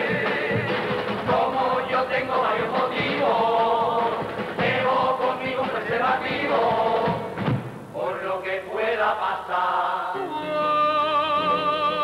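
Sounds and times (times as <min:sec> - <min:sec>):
men singing in chorus: 0:00.0 - 0:07.3, 0:08.0 - 0:12.0.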